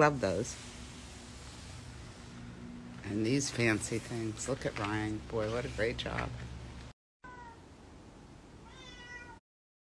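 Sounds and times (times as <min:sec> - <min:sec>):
cat meowing faintly: 0:07.2 - 0:07.6, 0:08.6 - 0:09.4.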